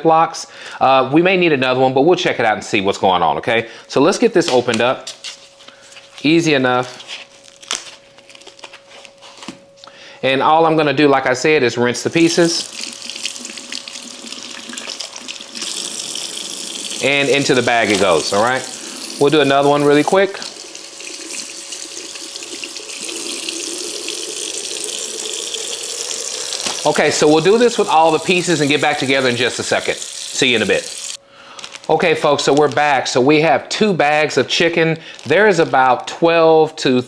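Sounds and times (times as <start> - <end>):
faint steady hum: 0.0 - 37.0
plastic packaging crinkling: 6.9 - 9.4, 12.7 - 20.7, 25.6 - 30.8, 31.4 - 33.2, 34.7 - 36.2
faucet water splashing: 12.2 - 31.2.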